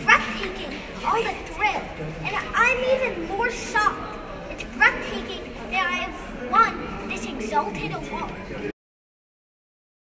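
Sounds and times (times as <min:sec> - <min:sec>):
boy speaking into a microphone: 0:00.0 - 0:08.6
murmur of people: 0:00.0 - 0:08.7.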